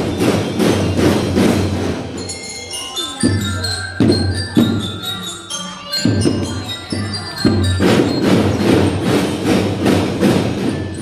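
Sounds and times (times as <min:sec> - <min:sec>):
snare drums beaten: 0:00.0 - 0:02.2, 0:07.4 - 0:11.0.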